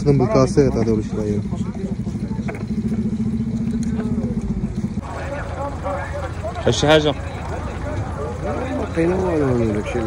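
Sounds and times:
small engine running: 0.0s - 10.0s
voices: 0.0s - 10.0s.

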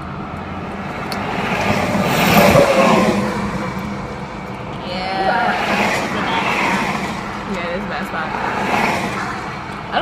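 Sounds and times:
vehicle passing close by: 0.0s - 10.0s.

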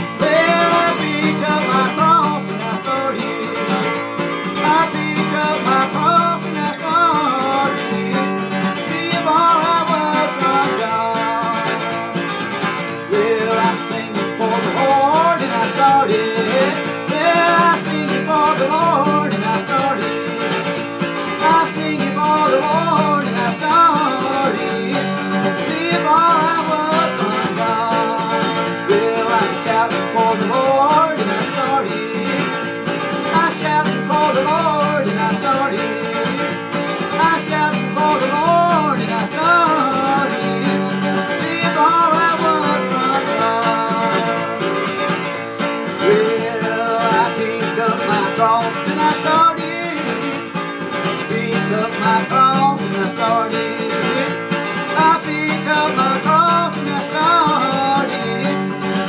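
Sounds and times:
acoustic guitar strummed: 0.0s - 59.0s
man singing: 0.0s - 59.0s.

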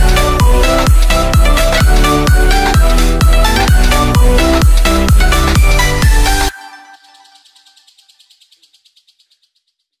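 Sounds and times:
rapid high-pitched pulsing chirp: 0.0s - 10.0s.

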